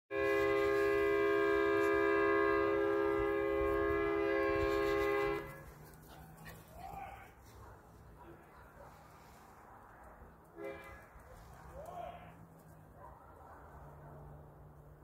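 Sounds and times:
vehicle horn blast: 0:00.1 - 0:05.7, 0:10.6 - 0:11.2
faint outdoor background: 0:00.1 - 0:15.0.

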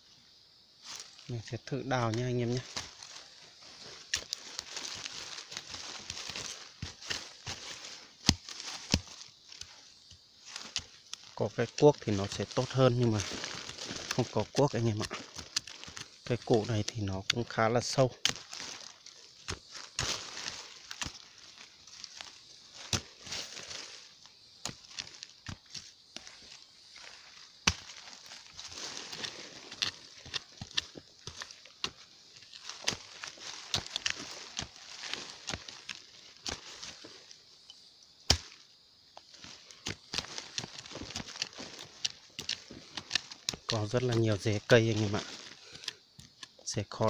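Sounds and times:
hand digging in pebbly soil: 0:00.8 - 0:47.0
scrapes and knocks in soil: 0:00.8 - 0:47.0.

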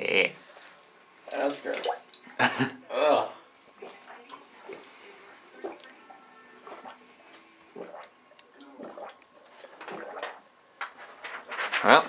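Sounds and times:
man gulping water: 0:01.3 - 0:02.5, 0:07.7 - 0:10.4.

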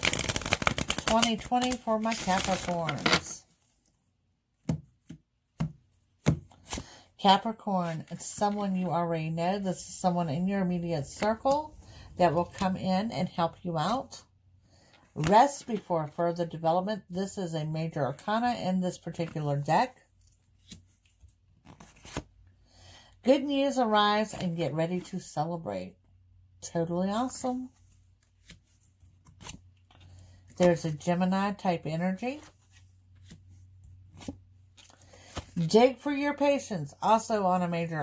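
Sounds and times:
cards rustling: 0:00.0 - 0:03.4.

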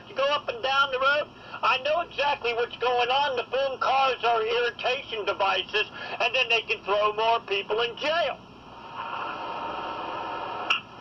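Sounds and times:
sharp click: 0:10.7 - 0:10.9.

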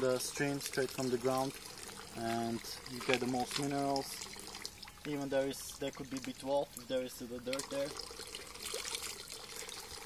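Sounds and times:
water running into a trough: 0:00.0 - 0:10.0.

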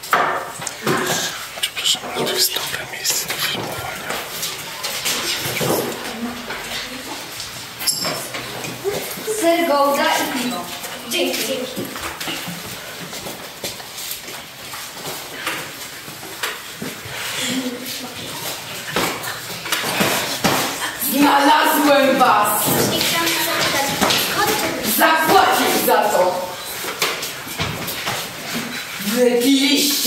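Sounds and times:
indistinct voices murmuring: 0:00.7 - 0:07.8.

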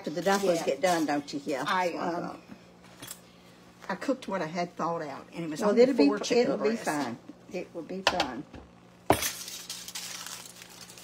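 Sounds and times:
aluminium foil crinkling: 0:00.0 - 0:01.2, 0:09.1 - 0:11.0.

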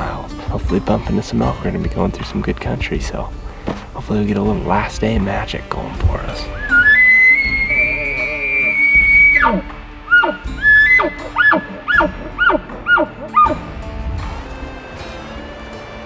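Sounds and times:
elk bugle call: 0:06.6 - 0:13.6.

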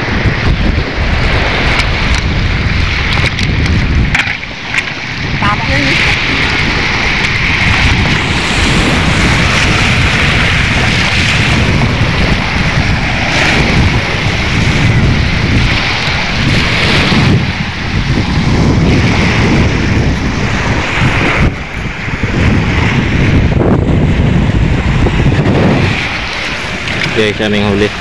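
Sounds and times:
waves on pebble shore: 0:00.0 - 0:28.0
wind buffeting microphone: 0:00.0 - 0:28.0.

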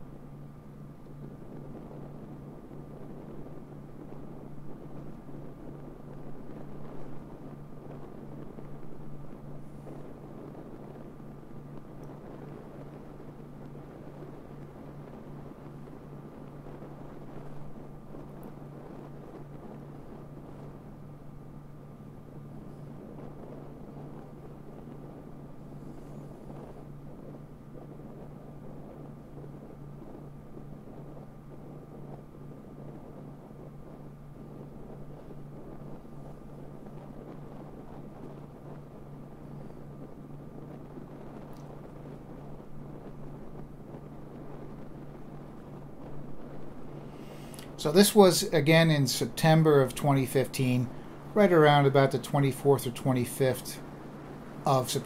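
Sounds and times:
wind and road noise: 0:00.0 - 0:55.0.

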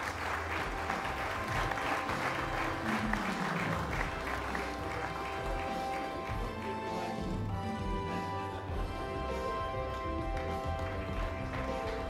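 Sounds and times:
audience applauding: 0:00.0 - 0:12.0
background music of held notes: 0:00.0 - 0:12.0.

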